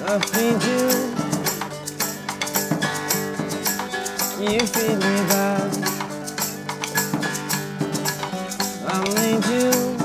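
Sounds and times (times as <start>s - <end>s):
acoustic guitar chords: 0.0s - 10.0s
sharp percussive clicks: 0.0s - 10.0s.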